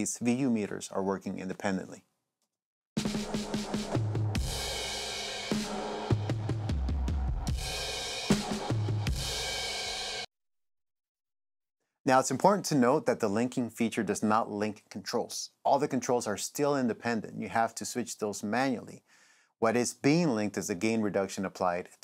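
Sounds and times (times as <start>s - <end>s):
drums and bass music: 3.0s - 10.3s.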